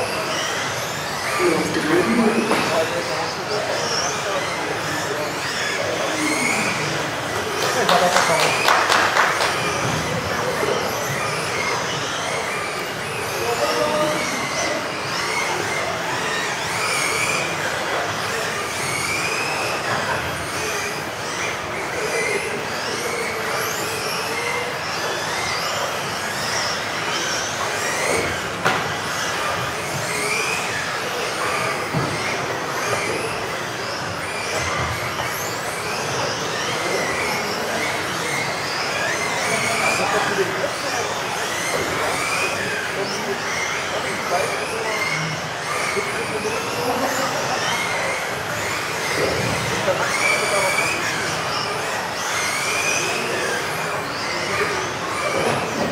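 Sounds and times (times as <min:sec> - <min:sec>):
rc car motors whining: 0:00.0 - 0:55.9.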